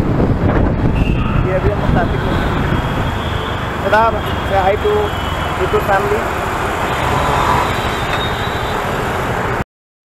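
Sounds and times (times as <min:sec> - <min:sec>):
wind buffeting microphone: 0:00.0 - 0:03.8
city traffic: 0:00.0 - 0:09.6
motorcycle engine: 0:01.0 - 0:09.6.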